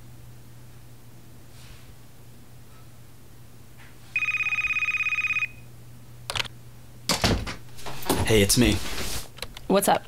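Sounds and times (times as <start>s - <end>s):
telephone ringing: 4.1s - 5.7s.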